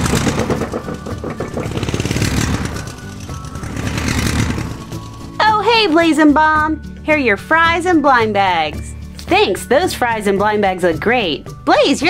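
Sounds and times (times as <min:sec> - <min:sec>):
toy truck engine revving: 0:00.0 - 0:05.4
background music: 0:00.0 - 0:12.0.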